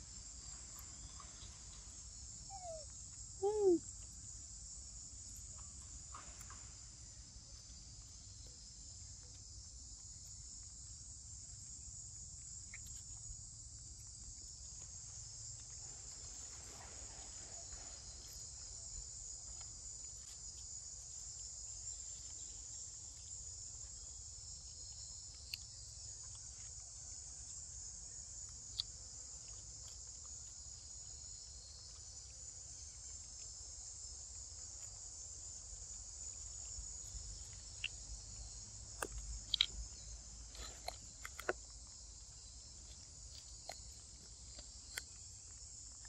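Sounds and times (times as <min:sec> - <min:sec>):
high-pitched insect chorus: 0:00.0 - 0:46.0.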